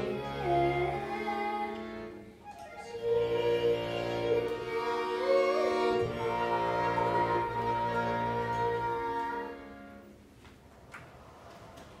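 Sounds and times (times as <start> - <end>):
accordion chord: 0.0 - 10.4.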